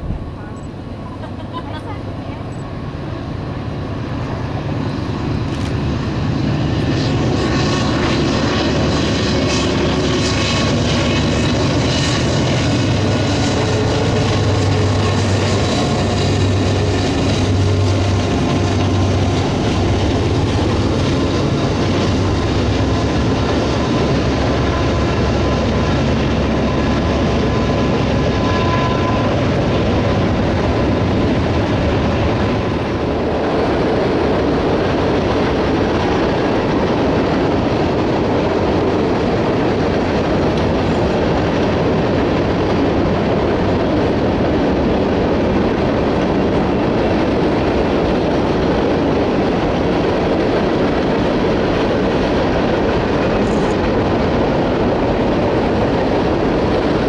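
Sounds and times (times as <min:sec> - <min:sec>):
freight train rolling on rails: 0:00.0 - 0:57.0.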